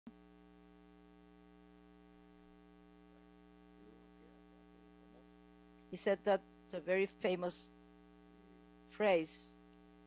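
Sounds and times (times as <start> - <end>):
steady electrical hum: 0.1 - 10.0
person speaking: 6.0 - 7.7, 9.0 - 9.5.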